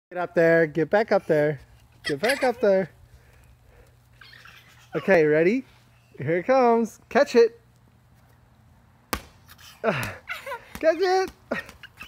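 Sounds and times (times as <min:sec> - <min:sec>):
ball bouncing on concrete: 0:09.1 - 0:12.0.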